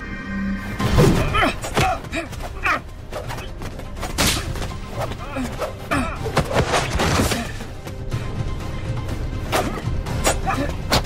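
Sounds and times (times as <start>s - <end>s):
grunts and shouts: 1.1s - 3.6s, 4.4s - 7.8s, 9.5s - 11.0s.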